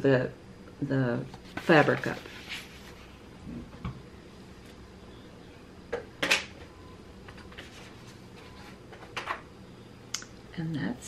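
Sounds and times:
objects rustling and scraping: 1.3s - 3.9s, 6.6s - 9.5s.

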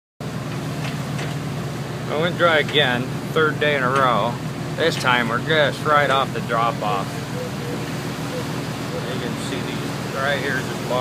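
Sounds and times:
low motor hum: 0.2s - 11.0s.

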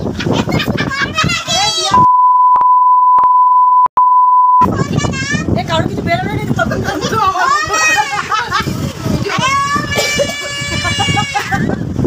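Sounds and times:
people talking: 0.2s - 2.1s, 4.6s - 11.6s
loud single-pitch bleep tone: 2.0s - 4.7s.

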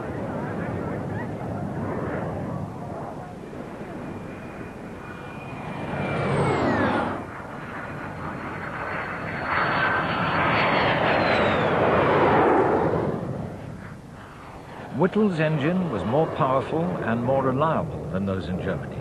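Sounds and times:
jet flying past: 0.0s - 19.0s.

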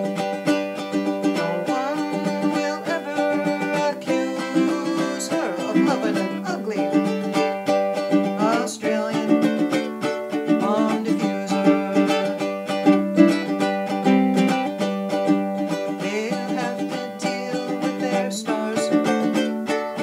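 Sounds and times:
ukulele strumming chords: 0.0s - 20.0s.

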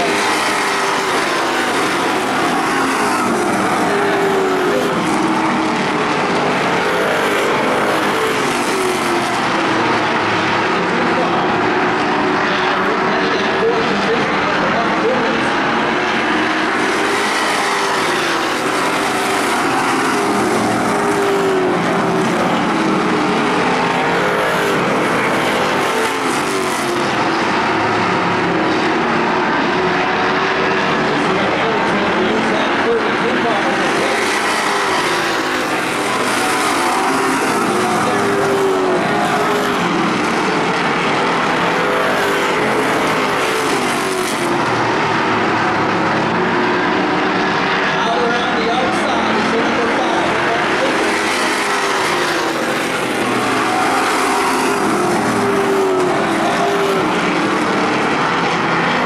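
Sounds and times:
race car engines racing: 0.0s - 59.0s.

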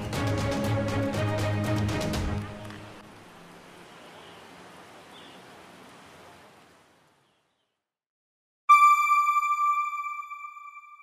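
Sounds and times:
bright bell-like chime: 8.7s - 11.0s.

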